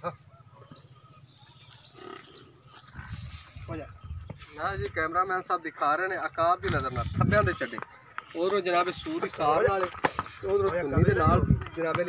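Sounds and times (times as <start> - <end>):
water buffalo low calls: 0.7 - 3.6.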